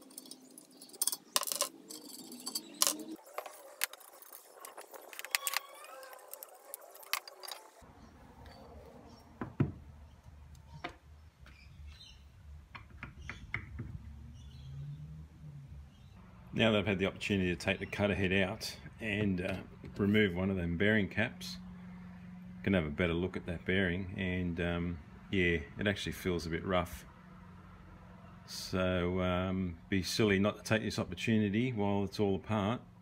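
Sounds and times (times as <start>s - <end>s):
metal parts clinking: 0.0s - 7.8s.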